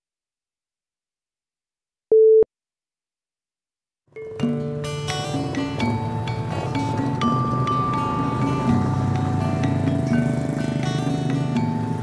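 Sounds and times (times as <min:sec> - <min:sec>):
short steady beep tone: 0:02.1 - 0:02.5.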